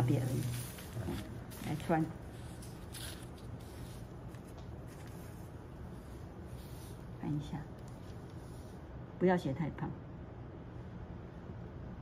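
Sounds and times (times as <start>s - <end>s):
paper sliding over felt: 0.2s - 7.2s.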